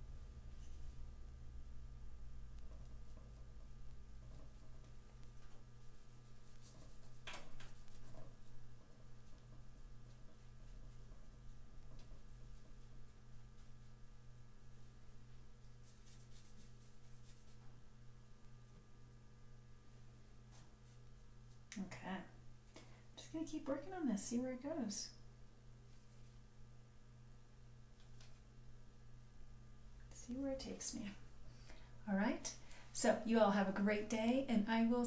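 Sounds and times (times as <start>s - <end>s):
low hum: 0.0s - 35.0s
paintbrush stroke on paper: 4.2s - 17.8s, 20.5s - 21.6s.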